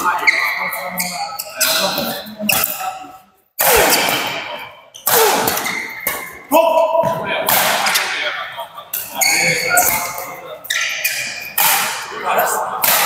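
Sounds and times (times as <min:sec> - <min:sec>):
shoe squeaks on court: 0:00.0 - 0:03.1, 0:03.7 - 0:06.4, 0:09.0 - 0:11.9
players' voices: 0:00.0 - 0:13.0
racket hitting shuttlecock: 0:03.6 - 0:06.4, 0:07.5 - 0:08.2, 0:11.5 - 0:12.1, 0:12.8 - 0:13.0.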